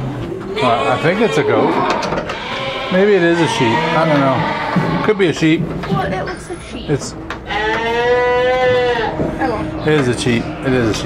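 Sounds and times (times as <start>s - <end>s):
sheep bleating: 0.5s - 5.2s, 7.5s - 9.2s.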